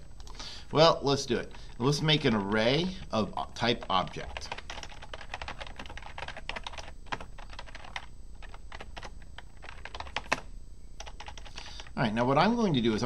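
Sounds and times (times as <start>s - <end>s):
computer keyboard typing: 1.4s - 11.9s.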